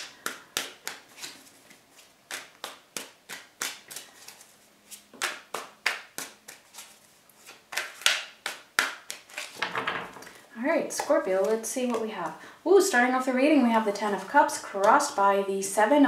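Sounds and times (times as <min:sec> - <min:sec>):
cards being shuffled: 0:00.0 - 0:10.4.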